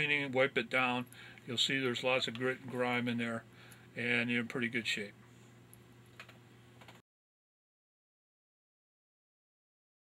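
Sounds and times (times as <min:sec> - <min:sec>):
faint steady hum: 0:00.0 - 0:07.0.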